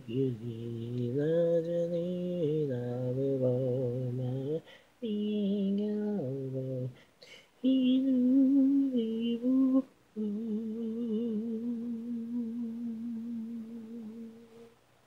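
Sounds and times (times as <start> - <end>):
a cappella vocal harmony: 0.0 - 14.8.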